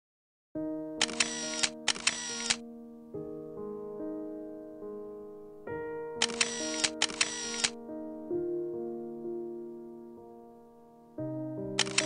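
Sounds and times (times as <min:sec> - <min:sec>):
soft music with sustained notes: 0:00.6 - 0:12.0
camera shutter firing: 0:01.0 - 0:02.6, 0:06.2 - 0:07.8, 0:11.8 - 0:12.0.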